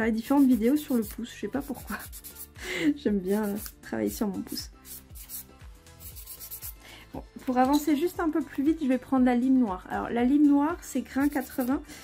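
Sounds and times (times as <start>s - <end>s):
soft background music: 0.0s - 12.0s
nail file rubbing on nail: 0.2s - 2.6s, 3.2s - 6.8s, 11.1s - 12.0s.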